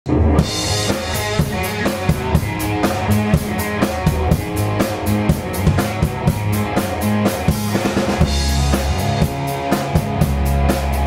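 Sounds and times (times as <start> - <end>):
drum kit: 0.1 - 11.0
electric guitars: 0.1 - 11.0.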